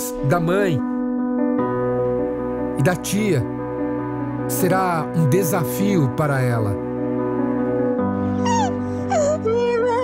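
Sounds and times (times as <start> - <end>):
soft background music: 0.0 - 10.0
woman crying wail: 8.3 - 10.0.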